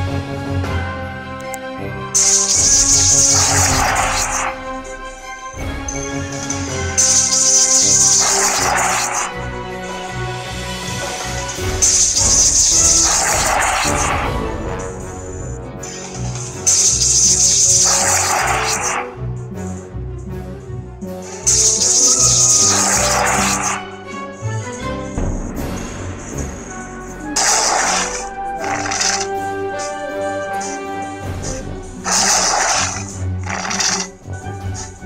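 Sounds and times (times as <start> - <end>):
game background music: 0.0 - 35.0
hissing crash bursts: 2.2 - 4.6, 11.5 - 14.3, 27.4 - 29.9, 32.0 - 34.1.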